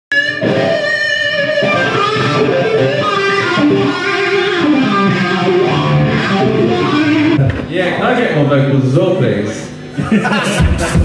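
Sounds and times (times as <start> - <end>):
electric guitar held notes: 0.1 - 7.7.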